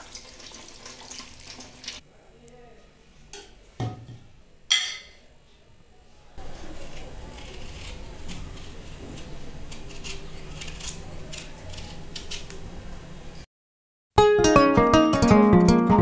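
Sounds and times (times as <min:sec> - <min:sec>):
knife scraping potato skin: 0:06.4 - 0:12.6
plucked acoustic guitar music: 0:14.2 - 0:16.0.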